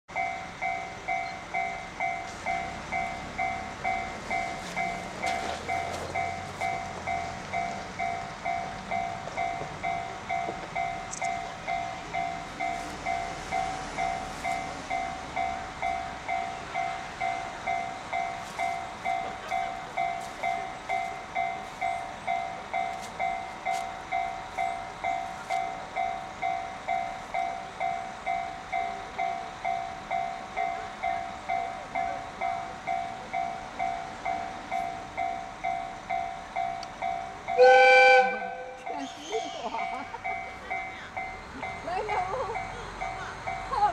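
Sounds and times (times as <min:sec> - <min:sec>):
level-crossing alarm ringing: 0:00.1 - 0:43.9
loud train horn: 0:37.6 - 0:38.8.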